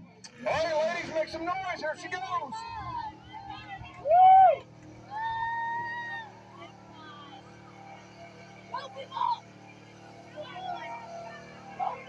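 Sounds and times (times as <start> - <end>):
truck engine droning: 0.0 - 12.0
women whooping: 2.8 - 7.4.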